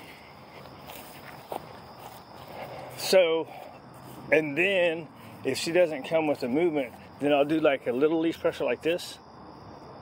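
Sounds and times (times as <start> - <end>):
footsteps on grass: 0.0 - 8.2.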